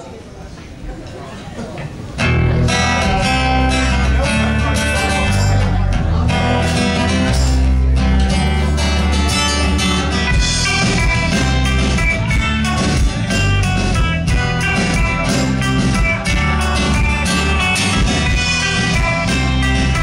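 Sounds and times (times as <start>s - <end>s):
drums: 1.8s - 20.0s
live rock band playing: 2.1s - 20.0s
strummed guitars: 2.1s - 20.0s.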